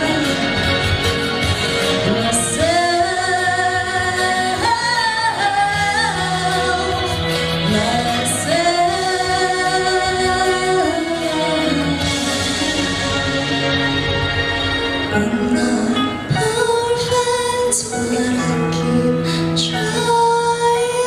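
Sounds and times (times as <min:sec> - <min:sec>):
woman singing into a microphone: 0:00.0 - 0:13.9, 0:15.0 - 0:21.0
instrumental accompaniment: 0:00.0 - 0:21.0.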